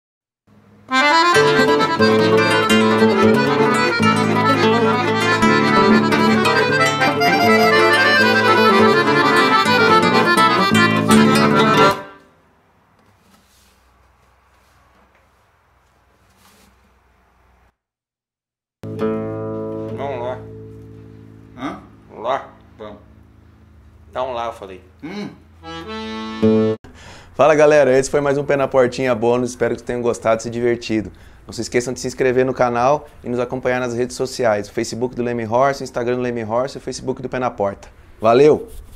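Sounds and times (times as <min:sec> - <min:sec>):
nylon-string acoustic guitar: 0:00.9 - 0:12.2, 0:18.8 - 0:22.1
piano accordion: 0:00.9 - 0:12.3, 0:25.6 - 0:26.8.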